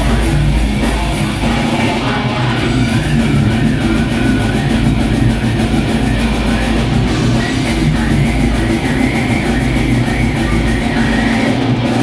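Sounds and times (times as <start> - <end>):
death metal band playing: 0.0 - 12.0.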